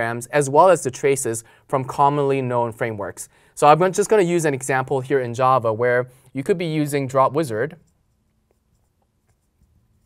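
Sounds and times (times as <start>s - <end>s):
marker writing on glass: 7.8s - 10.0s.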